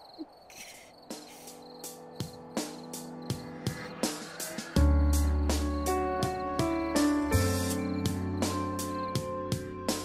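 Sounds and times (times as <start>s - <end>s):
crickets chirping: 0.0s - 9.2s
soft music of held notes: 4.8s - 10.0s.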